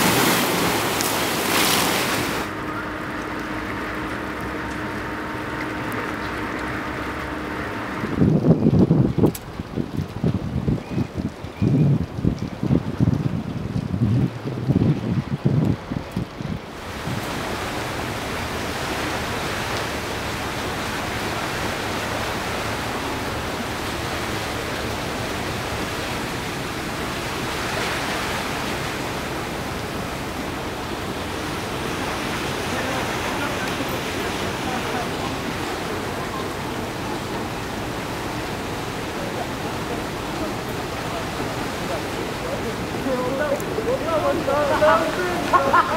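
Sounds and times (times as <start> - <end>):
rush of wind and sea: 0.0 - 45.9
wind buffeting microphone: 0.0 - 45.9.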